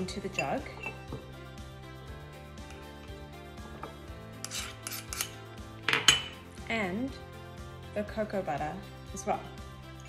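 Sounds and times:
soft background music: 0.0 - 10.0
metal spoon scraping: 0.3 - 1.1, 3.7 - 6.4.

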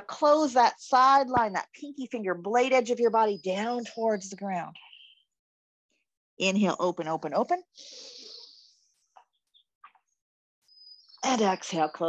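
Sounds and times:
faint bird-like chirps: 3.3 - 5.4, 8.0 - 8.8, 10.7 - 12.0
person inhaling: 7.8 - 8.7.

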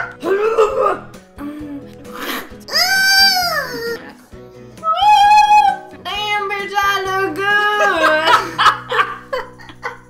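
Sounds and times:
background music: 0.0 - 10.0
woman squealing: 2.2 - 4.2, 4.8 - 5.9
woman laughing: 7.7 - 10.0.

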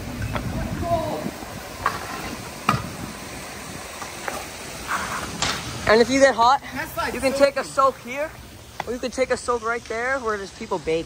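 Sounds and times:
wheels clicking over slab joints: 0.0 - 10.8
scooter wheels rolling on concrete: 0.0 - 11.0.

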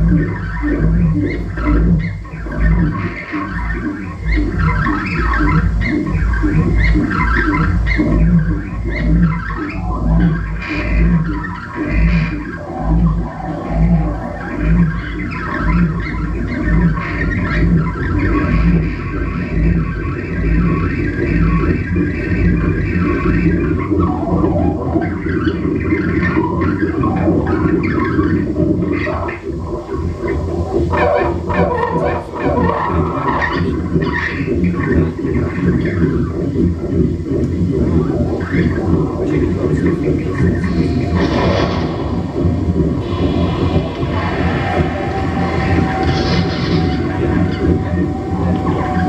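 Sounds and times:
high-pitched squeals and blips: 0.0 - 37.0, 37.7 - 49.0
low throbbing pulse: 0.0 - 49.0
steady low drone: 0.0 - 49.0.

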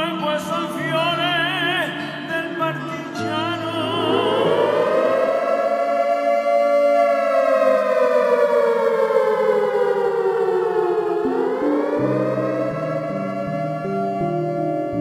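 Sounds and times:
air raid siren wailing: 1.6 - 15.0
low music notes: 10.0 - 15.0.

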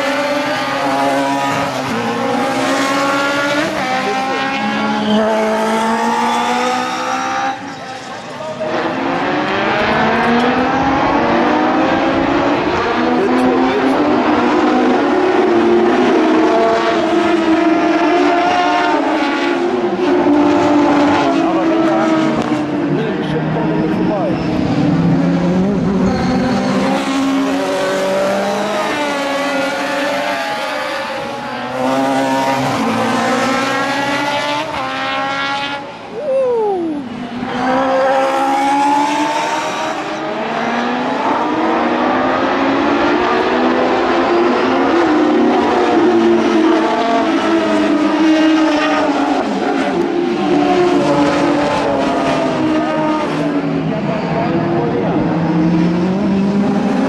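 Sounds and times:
race car engines revving: 0.0 - 57.0.

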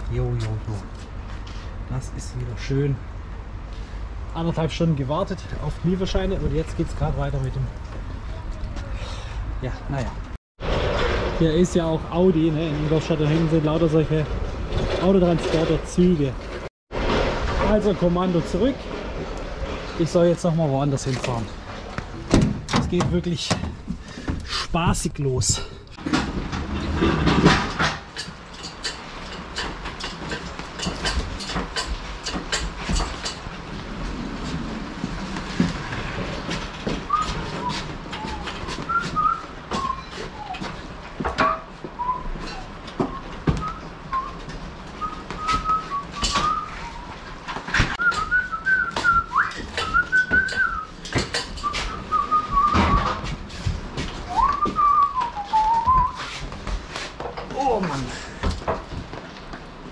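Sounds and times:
hand pallet truck clattering: 26.0 - 56.1
man whistling a tune: 37.1 - 40.6, 45.0 - 47.1, 48.0 - 50.9, 51.6 - 52.8, 54.3 - 56.3.

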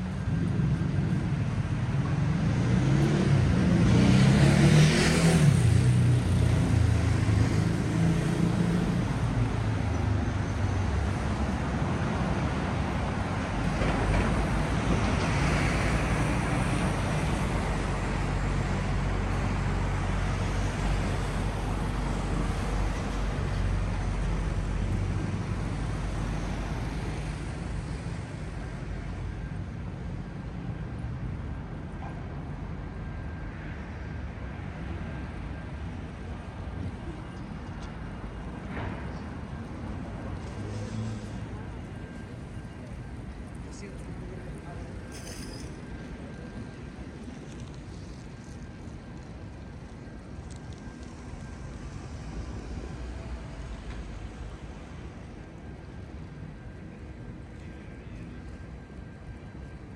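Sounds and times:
road traffic hum: 0.0 - 59.9
loud vehicle passing: 2.3 - 9.1.

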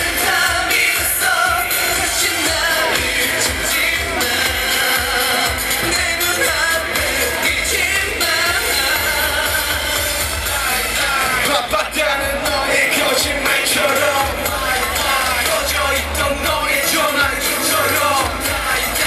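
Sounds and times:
dance-pop song over sound system: 0.0 - 19.0.

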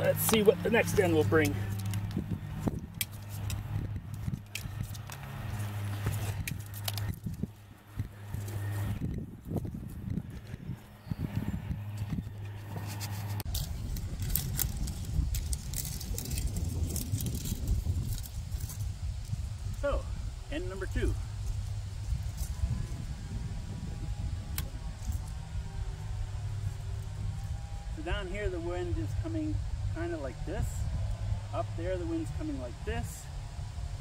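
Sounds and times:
steady low hum: 0.0 - 34.0
wind rumbling on microphone: 0.0 - 34.0.

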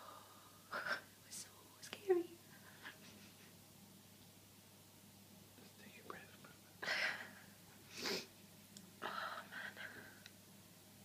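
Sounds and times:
person whispering: 1.2 - 2.3, 5.6 - 6.6.

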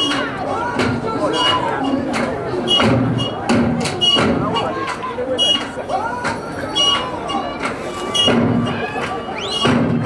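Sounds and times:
people singing and calling: 0.0 - 10.0
sharp drum beats: 0.0 - 10.0.

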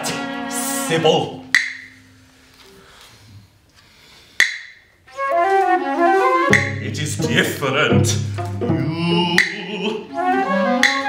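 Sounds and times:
flute melody: 5.0 - 11.0
low strings: 5.2 - 11.0.

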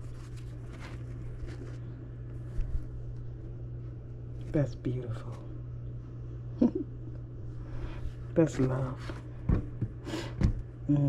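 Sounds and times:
steady low hum: 0.0 - 11.0
soft handling thump: 9.4 - 10.6.

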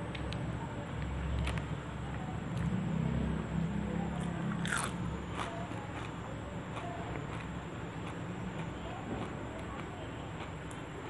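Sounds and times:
person chewing food: 4.5 - 10.9.

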